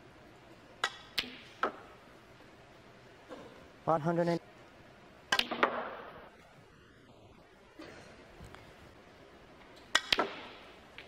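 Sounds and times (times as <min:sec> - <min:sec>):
snooker balls clicking: 0:09.6 - 0:11.0.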